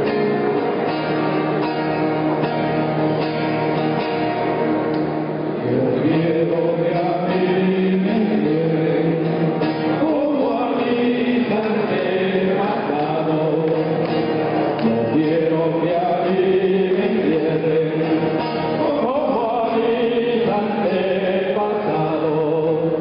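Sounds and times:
acoustic guitars accompanying: 0:00.0 - 0:23.0.

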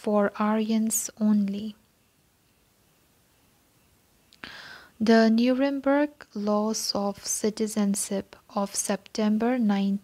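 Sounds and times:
woman breathing in: 0:04.4 - 0:05.0.

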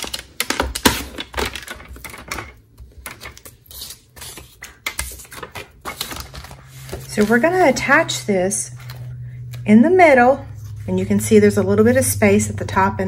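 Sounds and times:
paper being handled: 0:03.0 - 0:08.0.

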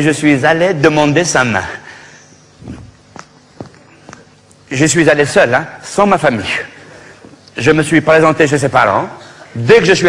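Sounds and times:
footsteps on stage floor: 0:02.6 - 0:04.6.

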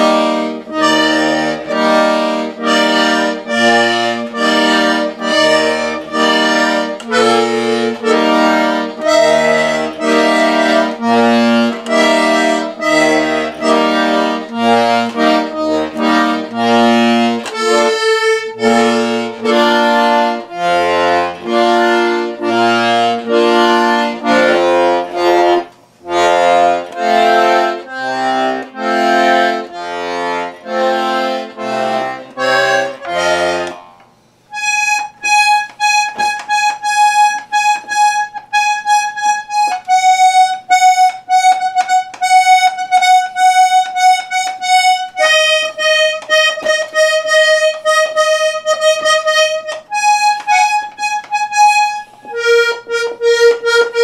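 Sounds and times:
accordion playing: 0:00.0 - 0:54.0.

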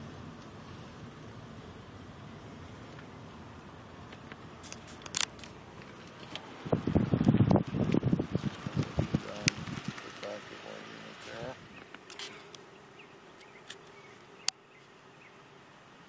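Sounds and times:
car cabin and road noise: 0:00.0 - 0:16.0.

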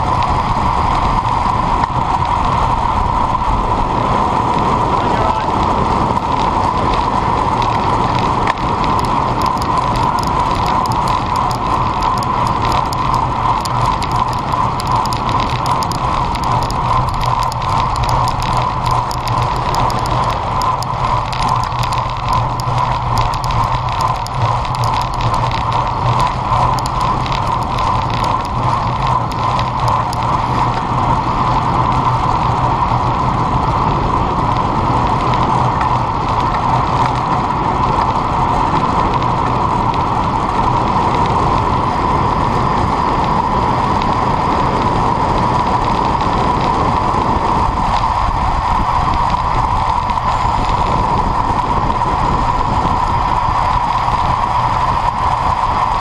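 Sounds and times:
bicycle mechanical ticking: 0:00.0 - 0:56.0
road noise: 0:00.0 - 0:56.0
wind rush on microphone: 0:00.0 - 0:56.0.

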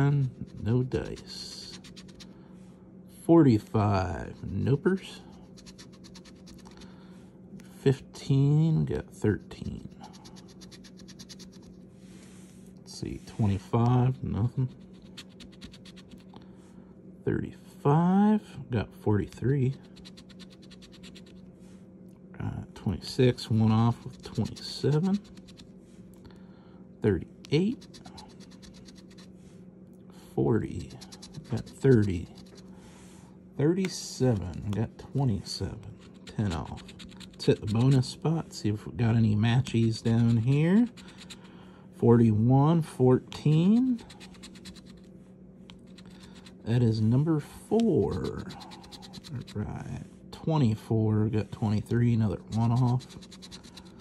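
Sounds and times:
coin scratching a lottery ticket: 0:00.2 - 0:02.3, 0:05.4 - 0:06.8, 0:09.5 - 0:11.8, 0:14.4 - 0:16.3, 0:19.7 - 0:21.4, 0:23.3 - 0:25.7, 0:27.6 - 0:29.3, 0:30.6 - 0:32.7, 0:35.8 - 0:38.2, 0:39.6 - 0:41.5, 0:43.4 - 0:45.1, 0:45.7 - 0:46.8, 0:47.9 - 0:49.6, 0:52.1 - 0:54.0
coin scraping scratch-off ticket: 0:23.5 - 0:25.6, 0:30.6 - 0:32.6, 0:35.9 - 0:38.1, 0:39.6 - 0:41.3, 0:43.4 - 0:45.0, 0:48.0 - 0:49.5, 0:52.4 - 0:53.9.

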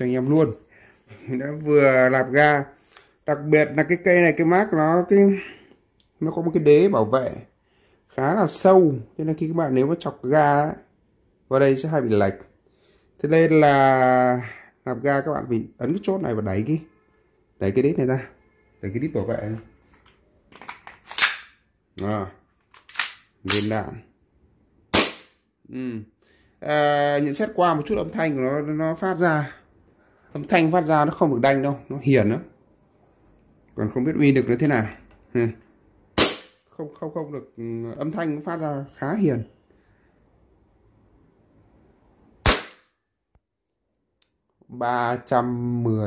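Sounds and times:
sharp pistol snap: 0:21.1 - 0:21.6, 0:22.8 - 0:23.7, 0:24.9 - 0:25.4, 0:36.2 - 0:36.6, 0:42.4 - 0:43.0
airsoft pistol shot: 0:24.9 - 0:25.4, 0:36.2 - 0:36.6, 0:42.4 - 0:42.9.

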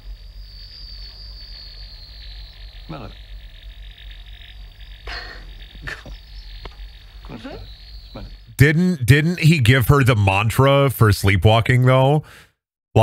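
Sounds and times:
insect whining and chirring: 0:00.0 - 0:08.6
person speaking: 0:08.2 - 0:12.3.

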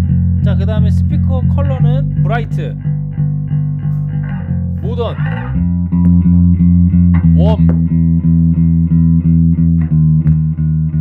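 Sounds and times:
electric bass plucked notes: 0:00.0 - 0:11.0.

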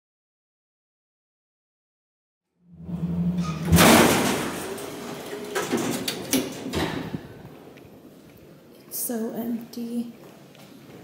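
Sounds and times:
elevator doors sliding open: 0:02.7 - 0:07.8
elevator humming: 0:02.7 - 0:08.2.

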